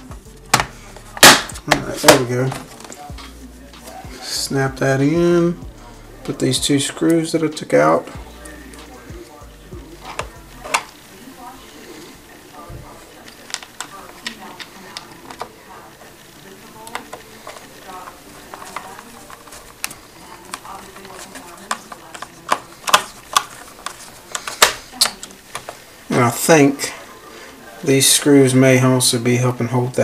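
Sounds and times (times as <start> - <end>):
hand handling noise: 6.2 - 26.1.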